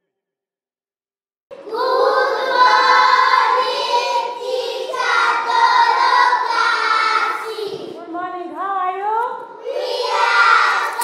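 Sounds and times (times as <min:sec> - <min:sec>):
young children singing: 0:01.5 - 0:08.0, 0:09.4 - 0:11.0.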